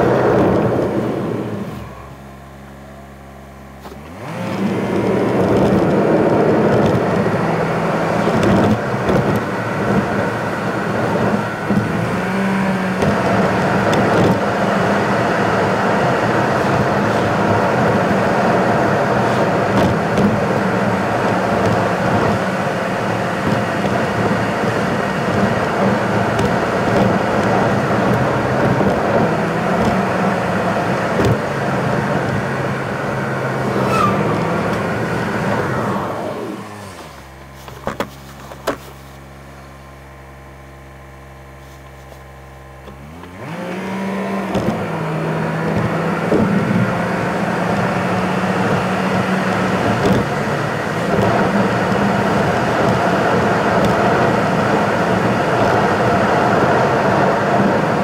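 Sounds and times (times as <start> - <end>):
car engine and tyre noise: 0.0 - 58.0.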